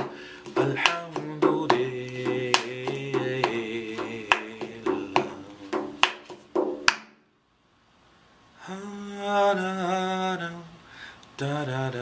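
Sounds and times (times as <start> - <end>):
man humming wordless melody: 0.0 - 6.0
hand beats on padded chair: 0.0 - 7.2.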